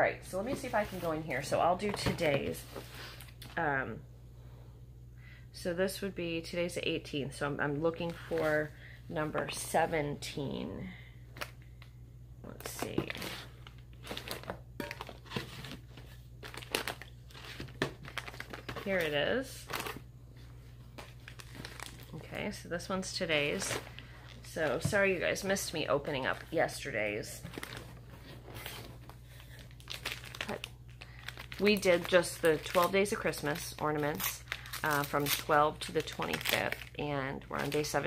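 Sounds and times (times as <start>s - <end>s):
gift wrapping crinkling: 12.6s - 20.0s, 20.8s - 22.2s, 23.4s - 38.0s.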